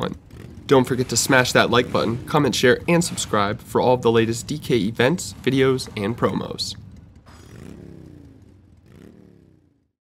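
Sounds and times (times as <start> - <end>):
engine revving: 0.0 - 10.0.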